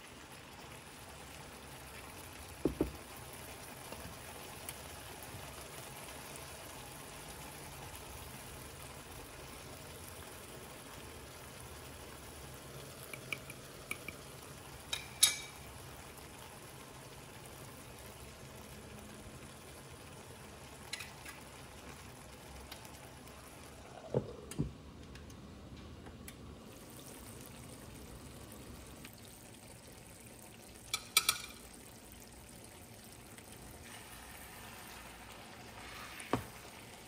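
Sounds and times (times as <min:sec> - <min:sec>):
vegetables sizzling in a frying pan: 0:00.0 - 0:24.2, 0:26.6 - 0:37.0.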